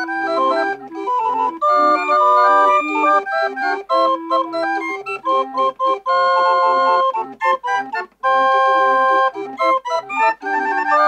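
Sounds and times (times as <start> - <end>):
barrel organ melody: 0.0 - 11.0.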